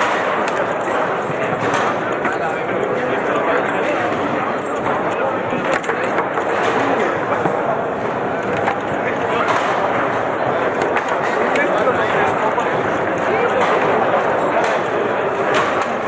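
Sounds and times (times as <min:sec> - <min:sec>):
foosball ball clacks: 0:00.0 - 0:02.9, 0:03.6 - 0:16.0
murmur of background chatter: 0:00.0 - 0:16.0.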